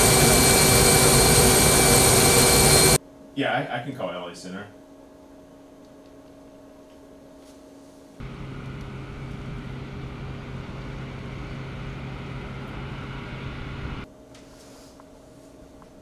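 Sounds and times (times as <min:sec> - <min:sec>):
jet engines running: 0:00.0 - 0:03.0, 0:08.2 - 0:14.1
faint room hum: 0:03.0 - 0:16.0.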